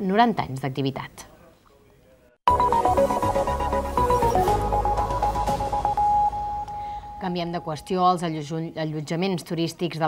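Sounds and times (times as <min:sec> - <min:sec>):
electronic jingle: 0:02.5 - 0:08.3.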